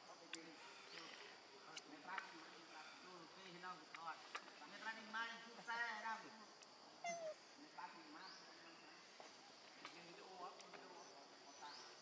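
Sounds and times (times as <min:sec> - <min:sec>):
young monkey calling: 0:07.0 - 0:07.4.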